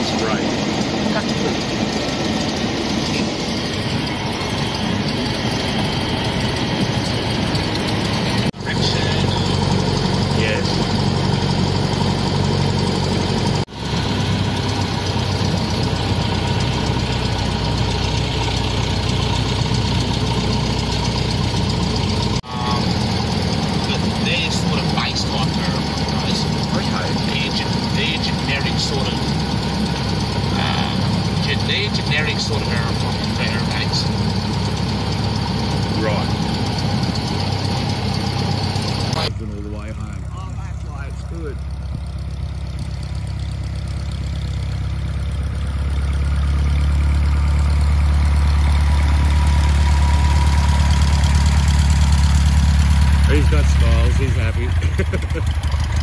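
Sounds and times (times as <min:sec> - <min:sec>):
light aircraft engine and propeller: 0:00.0 - 0:56.0.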